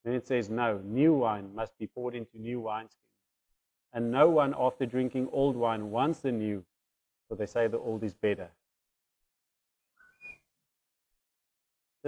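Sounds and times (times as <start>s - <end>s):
faint hiss with thin whistle: 4.0s - 6.5s, 10.0s - 10.5s.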